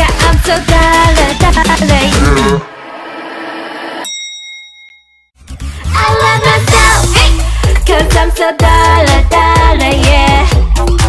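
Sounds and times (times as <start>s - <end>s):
bright bell-like ding: 4.0s - 5.4s.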